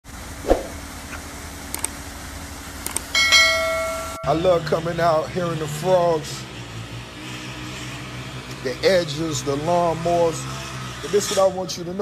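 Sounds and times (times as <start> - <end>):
quick double clicks: 2.8 - 3.1
bright bell ding: 3.2 - 4.7.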